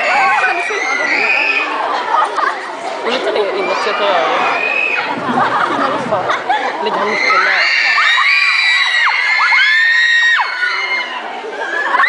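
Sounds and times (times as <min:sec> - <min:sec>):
crowd screaming: 0:00.0 - 0:02.5, 0:03.1 - 0:12.0.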